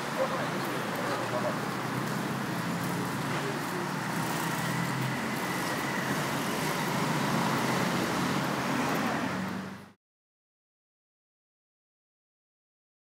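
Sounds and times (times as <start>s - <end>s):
street traffic passing cars: 0.0s - 10.0s.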